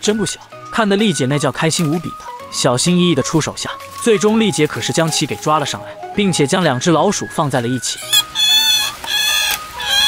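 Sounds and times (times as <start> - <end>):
rats squealing: 7.8 - 10.0.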